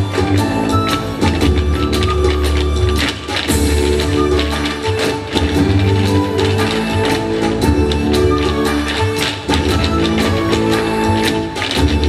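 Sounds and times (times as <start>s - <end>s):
hard shoes clicking on stage: 0.0s - 12.0s
music with steady beat: 0.0s - 12.0s.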